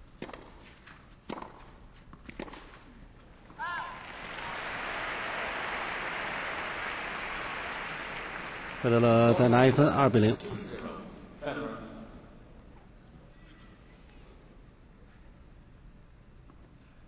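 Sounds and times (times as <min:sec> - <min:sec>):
tennis ball hits: 0:00.2 - 0:00.7, 0:01.3 - 0:02.8
crowd applause and cheering: 0:03.6 - 0:09.8.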